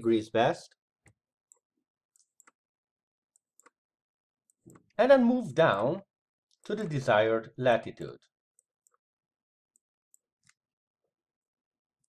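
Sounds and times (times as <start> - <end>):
computer mouse clicks: 2.2 - 2.6, 3.4 - 3.8.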